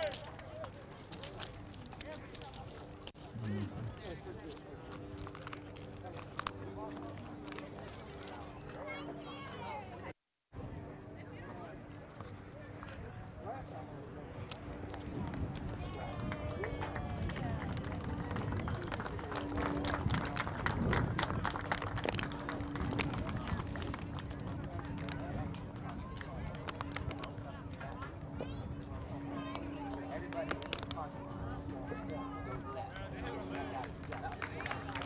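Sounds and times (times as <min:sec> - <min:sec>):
indistinct chatter of people: 0:00.0 - 0:35.0
steady low hum: 0:00.1 - 0:35.0.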